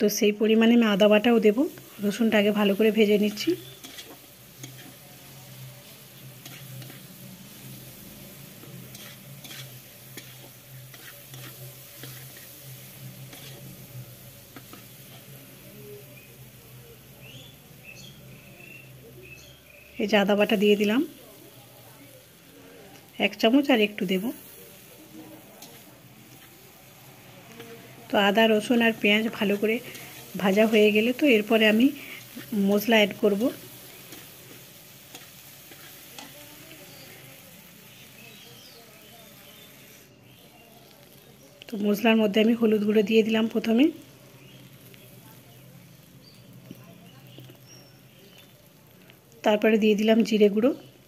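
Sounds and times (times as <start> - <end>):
oil sizzling: 0.0 - 51.0
metal spatula scraping pan: 1.7 - 15.4, 25.4 - 27.7, 28.6 - 37.3.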